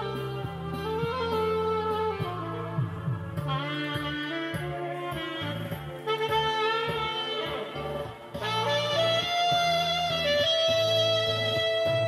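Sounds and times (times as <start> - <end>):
bass line: 0.0 - 12.0
saxophone melody: 0.0 - 12.0.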